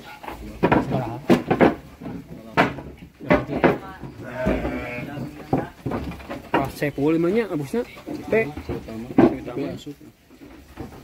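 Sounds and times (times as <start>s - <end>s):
ram bumping wooden boards: 0.0s - 11.0s.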